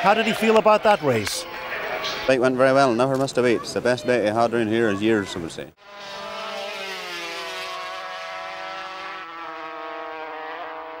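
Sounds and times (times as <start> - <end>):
racing motorcycle engine: 5.8 - 11.0.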